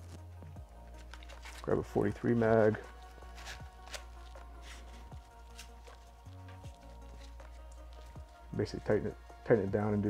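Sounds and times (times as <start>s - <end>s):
cord rustling and clicking: 0.0s - 8.6s
soft background music: 0.0s - 10.0s.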